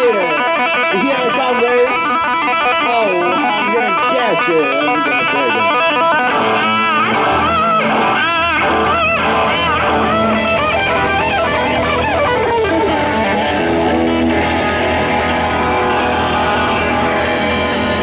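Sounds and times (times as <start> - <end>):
electric guitar lead with vibrato: 0.0 - 18.0
live rock band playing: 0.0 - 18.0.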